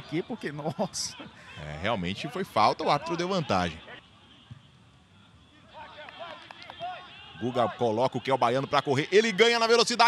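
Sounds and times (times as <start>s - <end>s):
stadium ambience: 0.0s - 10.0s.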